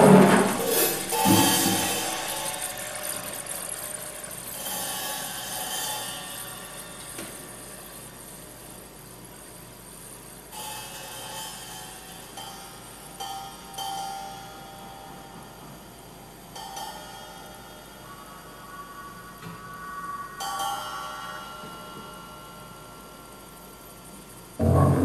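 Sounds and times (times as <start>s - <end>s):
percussion hit: 0.0s - 3.3s, 24.6s - 25.0s
faint ringing tones: 12.2s - 25.0s.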